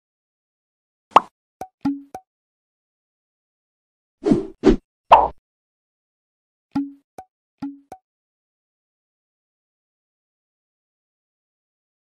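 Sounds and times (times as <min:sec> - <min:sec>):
cartoon pops: 0:01.1 - 0:02.2
pitched blip: 0:01.1 - 0:02.2, 0:06.8 - 0:07.0, 0:07.6 - 0:08.0.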